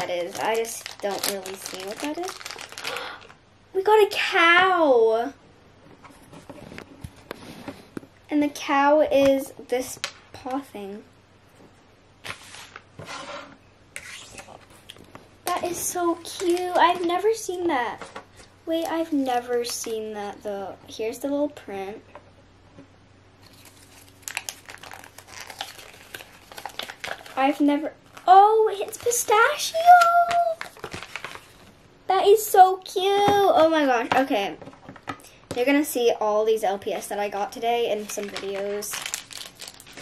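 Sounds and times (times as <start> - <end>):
plastic packaging crinkling: 0.0 - 3.4, 14.3 - 17.5, 23.4 - 31.7, 37.8 - 40.0.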